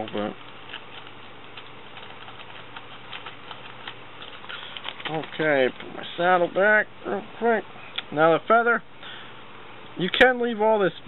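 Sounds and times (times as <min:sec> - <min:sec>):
low hiss and hum: 0:00.0 - 0:11.0.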